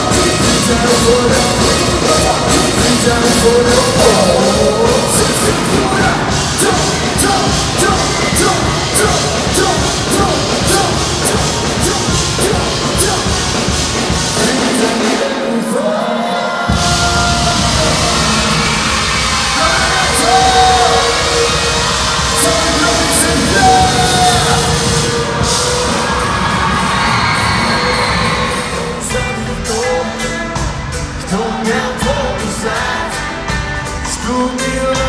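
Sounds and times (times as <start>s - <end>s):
crowd noise: 0.0s - 35.0s
live band music: 0.0s - 35.0s.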